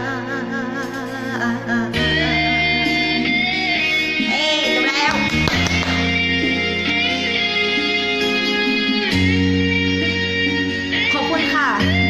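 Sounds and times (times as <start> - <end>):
woman singing with vibrato: 0.0 - 5.8
backing music track: 0.0 - 12.0.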